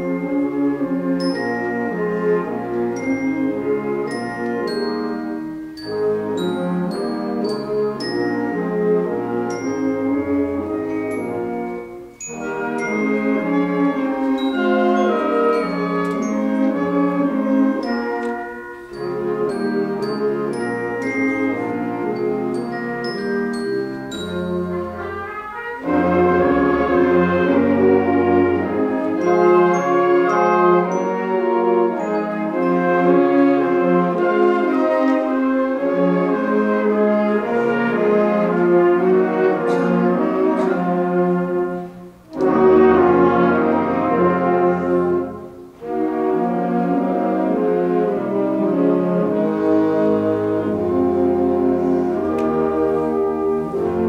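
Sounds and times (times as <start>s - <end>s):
concert band playing chords: 24.0s - 31.0s.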